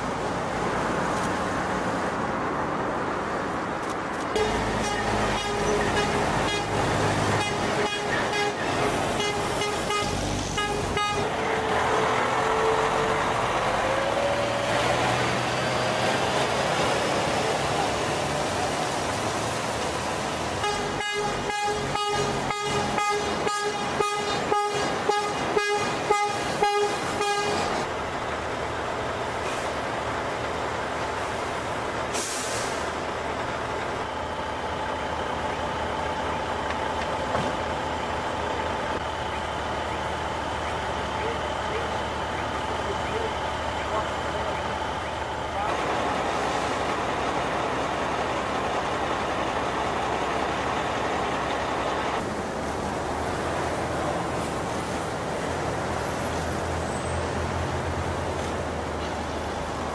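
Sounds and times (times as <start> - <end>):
heavy truck engines passing: 0.0 - 59.9
truck horn blasts: 4.4 - 13.1, 20.6 - 27.8.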